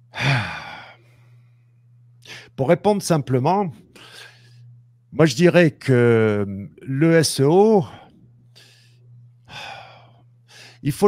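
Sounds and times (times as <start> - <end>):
faint low hum: 0.0 - 11.0
man sighing: 0.1 - 1.0.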